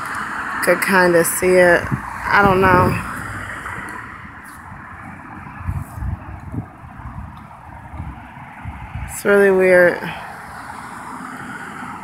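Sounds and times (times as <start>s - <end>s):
wind buffeting microphone: 0.6s - 12.0s
low bumps: 1.7s - 9.9s.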